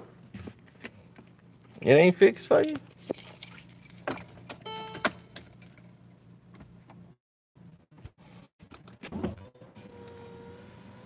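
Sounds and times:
low steady hum: 0.1 - 7.8
short steady tone: 4.6 - 5.2.

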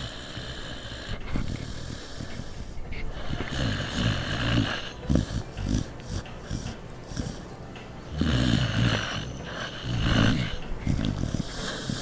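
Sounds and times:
dog snoring: 0.0 - 12.0.

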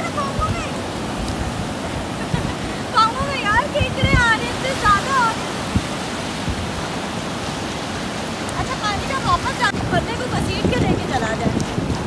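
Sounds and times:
sea surf washing over sand: 0.0 - 12.0.

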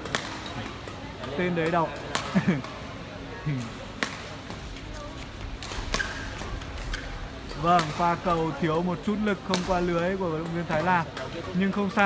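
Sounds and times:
badminton rackets striking shuttlecock: 0.0 - 2.8, 3.9 - 4.7, 5.6 - 8.4, 9.4 - 11.4
low hall background noise: 0.0 - 12.0.

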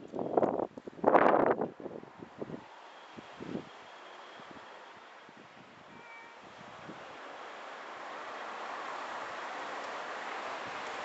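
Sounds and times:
low outdoor hiss: 2.1 - 11.0
cat meow: 5.9 - 6.4.

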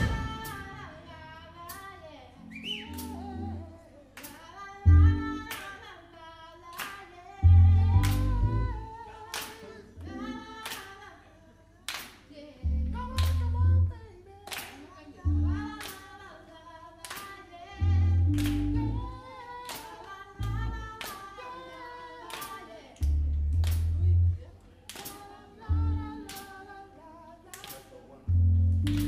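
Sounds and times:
low bass notes: 0.0 - 1.5, 4.9 - 5.4, 7.4 - 8.9, 12.6 - 14.0, 15.3 - 15.8, 17.8 - 19.2, 20.4 - 20.9, 23.0 - 24.5, 25.7 - 26.3, 28.3 - 29.0
woman singing: 0.0 - 23.1, 24.0 - 28.2
handclaps: 5.5 - 5.8, 6.7 - 7.0, 8.0 - 8.3, 9.3 - 9.7, 10.6 - 11.0, 11.9 - 12.3, 13.2 - 13.4, 14.5 - 14.9, 15.8 - 16.1, 17.0 - 17.4, 18.4 - 18.7, 19.6 - 20.1, 20.9 - 21.4, 22.3 - 22.6, 23.6 - 23.9, 24.9 - 25.2, 27.5 - 28.0.

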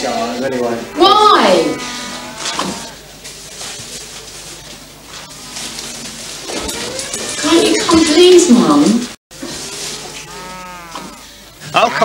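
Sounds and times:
animal drawn-out call: 0.7 - 3.0, 9.6 - 12.0.

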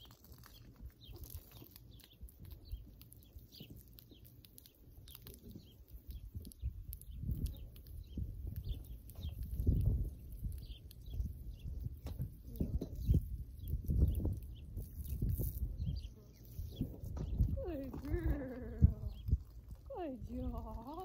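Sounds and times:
small birds chirping: 0.0 - 21.0
wind buffeting microphone: 6.0 - 21.0.

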